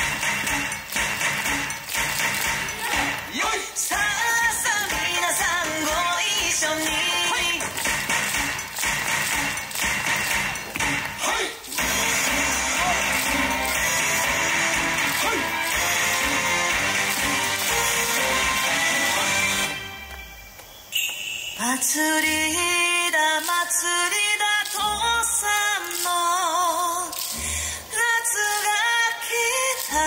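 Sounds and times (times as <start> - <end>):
sharp percussive hits: 0.0 - 4.0, 4.8 - 15.8
loud dance music: 0.0 - 20.0.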